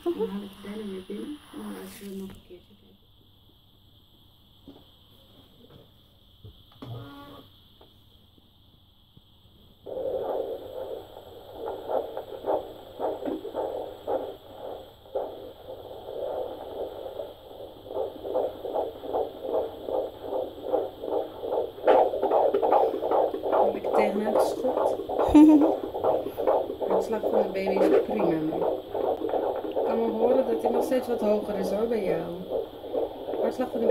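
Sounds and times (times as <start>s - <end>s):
fetal doppler heartbeat whooshing: 9.8s - 33.9s.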